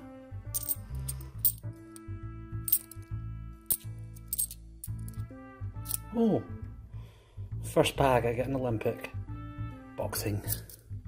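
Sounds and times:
background music: 0:00.0 - 0:11.0
coins clinking: 0:00.5 - 0:03.1, 0:03.7 - 0:05.2, 0:05.8 - 0:06.1, 0:10.4 - 0:10.9.

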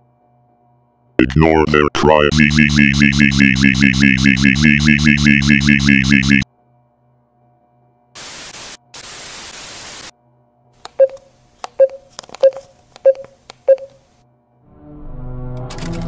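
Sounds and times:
white-noise static bursts: 0:08.2 - 0:10.1.

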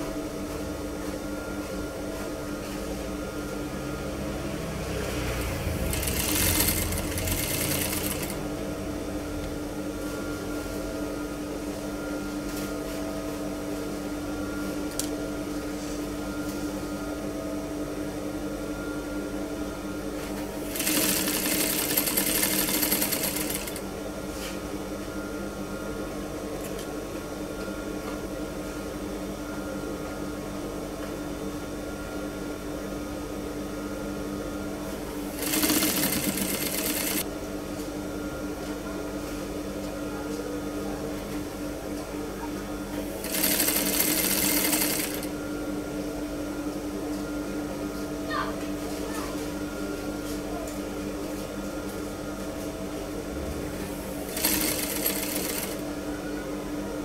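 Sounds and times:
sewing machine motor humming: 0:04.6 - 0:08.7, 0:20.2 - 0:23.9, 0:35.1 - 0:37.2, 0:43.1 - 0:45.4, 0:53.8 - 0:55.9
sewing machine stitching: 0:05.0 - 0:08.4, 0:20.6 - 0:23.8, 0:35.3 - 0:37.2, 0:43.2 - 0:45.3, 0:54.1 - 0:55.8.

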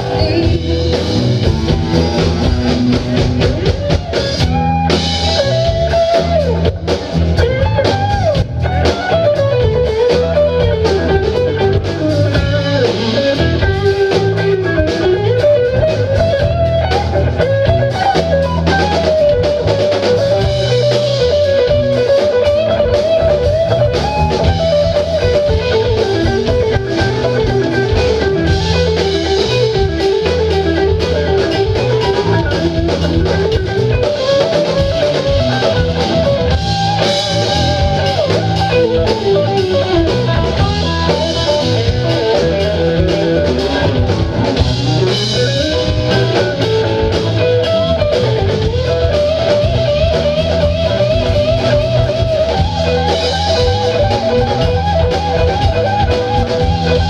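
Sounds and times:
drum kit: 0:00.0 - 0:57.0
electric bass: 0:00.0 - 0:57.0
lead electric guitar: 0:00.0 - 0:57.0.

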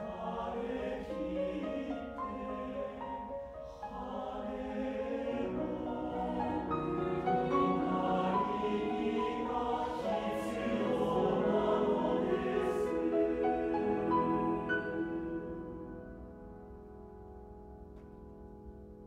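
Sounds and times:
mixed choir singing: 0:00.0 - 0:16.4
piano accompaniment: 0:00.0 - 0:19.0.

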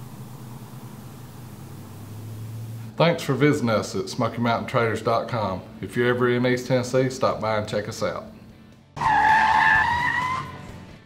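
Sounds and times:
tyre screech: 0:09.0 - 0:10.7.

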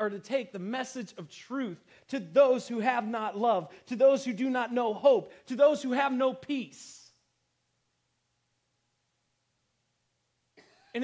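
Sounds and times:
faint steady hum: 0:00.0 - 0:11.0
man clearing throat: 0:10.6 - 0:11.0.

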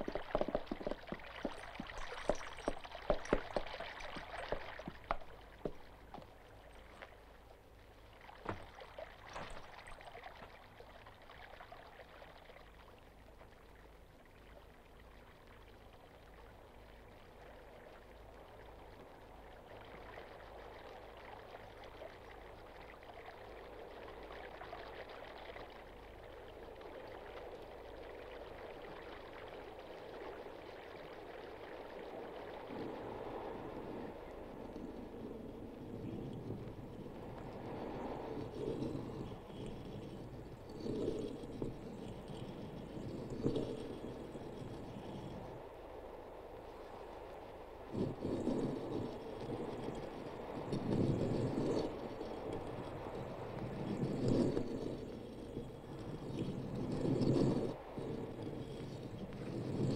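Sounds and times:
running water rushing: 0:00.0 - 0:07.0, 0:08.2 - 0:10.8
sharp knocks or splashes: 0:08.4 - 0:09.7.

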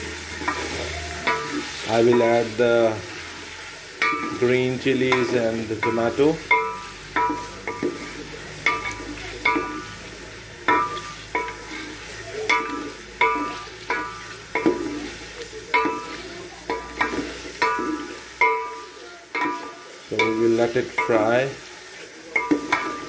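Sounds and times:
food sizzling in oil: 0:00.0 - 0:23.0
wooden spoon knocking metal pot: 0:00.5 - 0:02.6, 0:04.0 - 0:10.0, 0:10.6 - 0:11.8, 0:12.5 - 0:15.1, 0:15.7 - 0:21.6, 0:22.3 - 0:23.0.

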